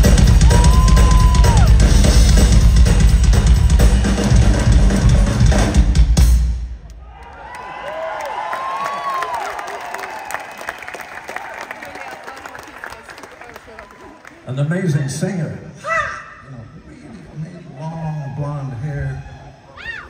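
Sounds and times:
heavy bass drum: 0.0s - 6.7s
rock drum kit playing loud: 0.0s - 6.8s
crowd cheering and whistling: 0.2s - 2.2s, 3.6s - 4.7s, 6.9s - 12.6s.

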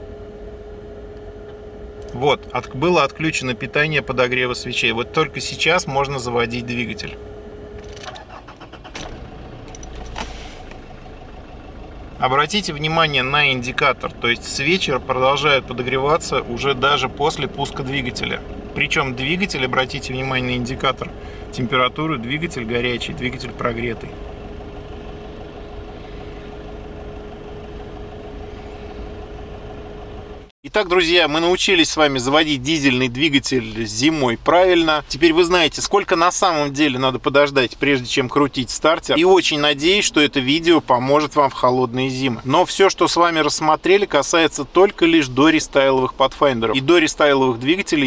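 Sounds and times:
diesel engine starting and idling: 0.0s - 48.0s.

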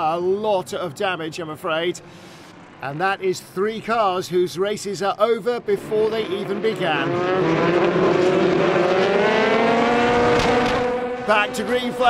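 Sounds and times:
race cars accelerating: 5.4s - 12.0s
race car engine rising in pitch: 5.6s - 12.0s.

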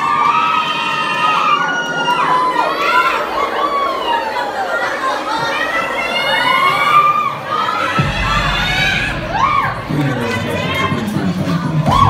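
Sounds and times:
crowd cheering and whooping: 0.0s - 12.0s.

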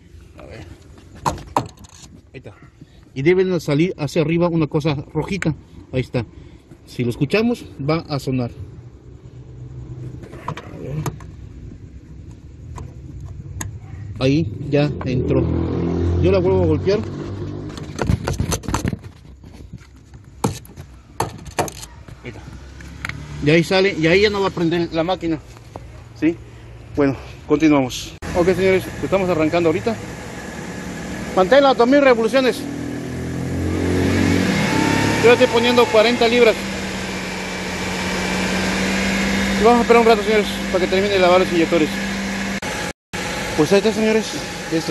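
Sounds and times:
car engine running steadily: 27.9s - 44.9s.

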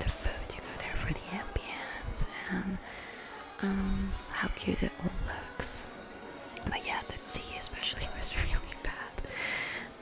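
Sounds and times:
woman whispering softly: 0.0s - 2.9s, 3.5s - 5.9s, 6.6s - 9.3s.

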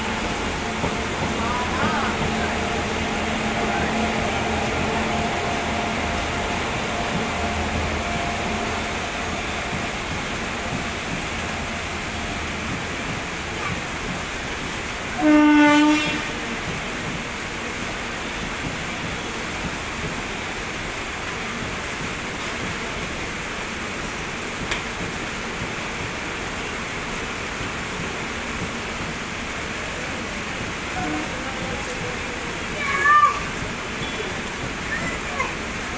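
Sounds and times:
train wheels rumbling on rail: 0.0s - 35.9s
short train horn blast: 15.2s - 16.6s, 31.0s - 31.4s.

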